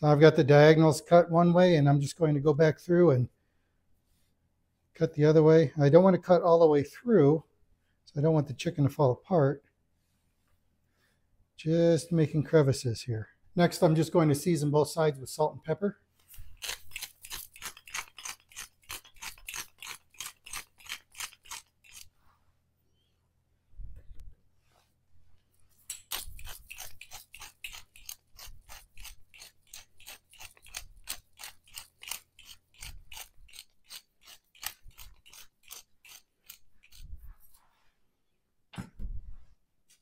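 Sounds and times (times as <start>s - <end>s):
salt and pepper mills grinding: 16.3s - 22.1s, 25.9s - 37.4s.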